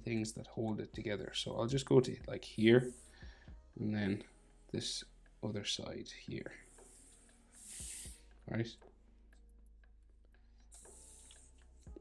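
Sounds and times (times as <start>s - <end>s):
soft hiss: 0.0s - 9.4s, 10.4s - 12.0s.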